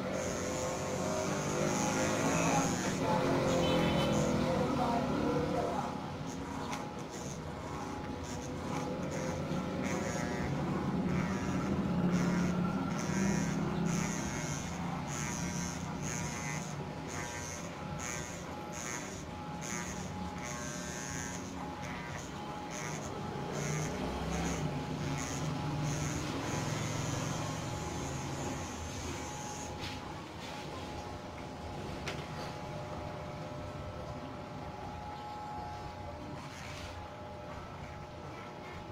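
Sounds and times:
electric hair clippers running: 0:00.0 - 0:30.9, 0:35.4 - 0:37.1.

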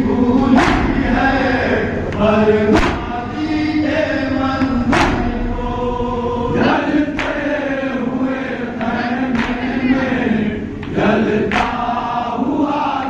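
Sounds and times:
men chanting in unison: 0:00.0 - 0:13.0.

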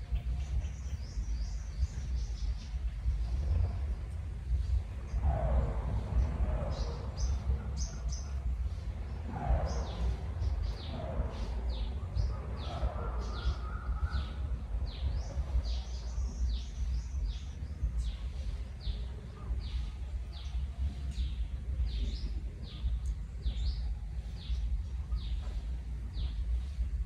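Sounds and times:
birds chirping: 0:00.0 - 0:27.0
low outdoor rumble: 0:00.0 - 0:27.0.

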